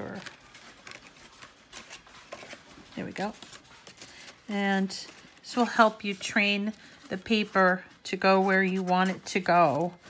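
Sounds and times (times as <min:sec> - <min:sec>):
card stock rustling and tapping: 0:00.0 - 0:10.0.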